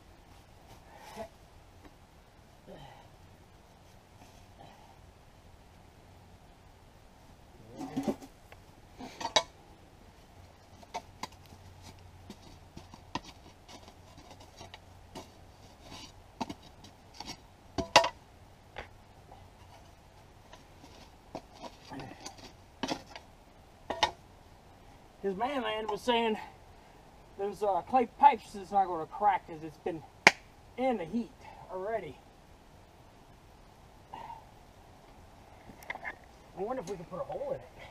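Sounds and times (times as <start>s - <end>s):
bricks and stove pipe clinking: 17.2s - 18.2s.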